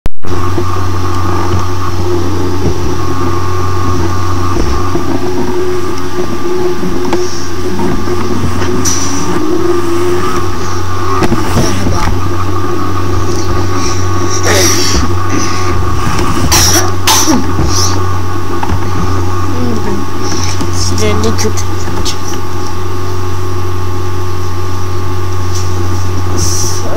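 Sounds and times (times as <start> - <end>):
loud low hum with hiss: 0.2 - 26.9
faint voice: 13.3 - 15.8.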